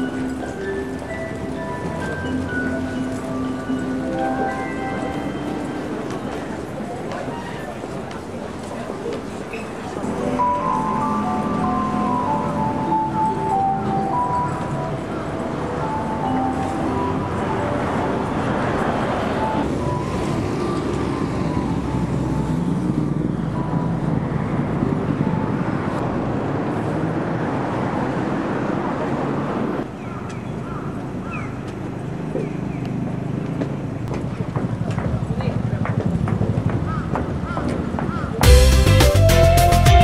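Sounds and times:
crowd voices talking: 0:00.0 - 0:27.0, 0:31.7 - 0:40.0
passing road traffic: 0:00.0 - 0:40.0.

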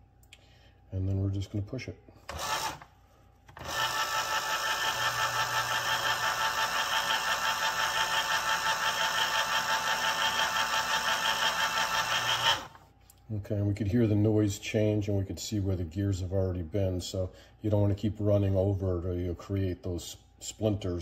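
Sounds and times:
electric can opener whirring: 0:02.2 - 0:02.9, 0:03.5 - 0:12.8.

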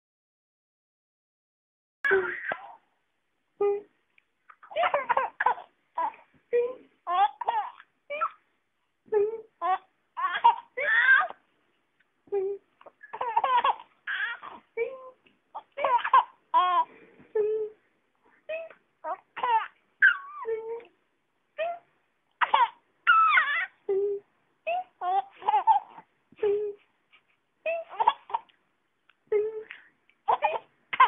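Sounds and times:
baby squealing and cooing: 0:07.1 - 0:08.4, 0:09.6 - 0:11.4, 0:13.0 - 0:14.6, 0:18.5 - 0:20.5, 0:22.4 - 0:23.8
baby squealing: 0:19.4 - 0:20.4, 0:22.4 - 0:23.8.

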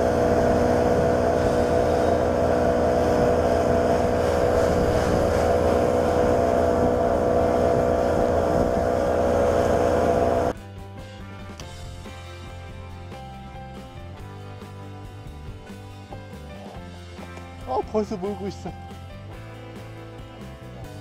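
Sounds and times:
outboard motor at high revs: 0:00.0 - 0:10.6
water rushing off hull: 0:00.0 - 0:10.6.

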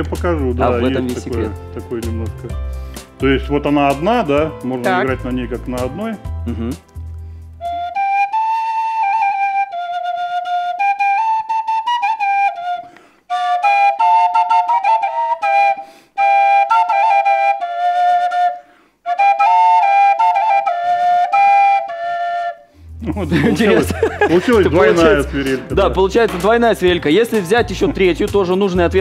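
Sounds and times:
double duct flute folk tune: 0:00.0 - 0:26.4.

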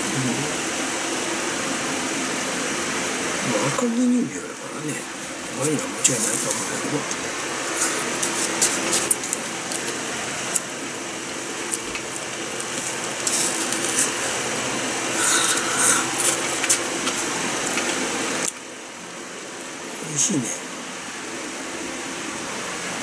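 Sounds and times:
ice crunching: 0:04.9 - 0:18.6
spoon scraping shaved ice: 0:07.7 - 0:10.7, 0:11.7 - 0:18.0.

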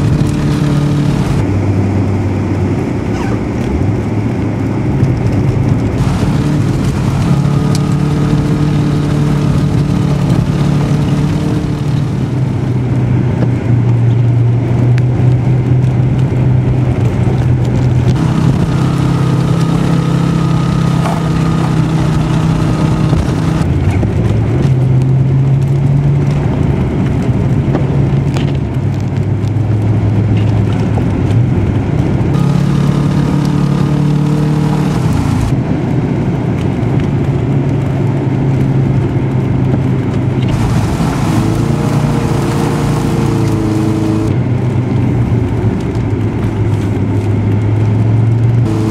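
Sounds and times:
car engine running: 0:00.0 - 0:48.9.

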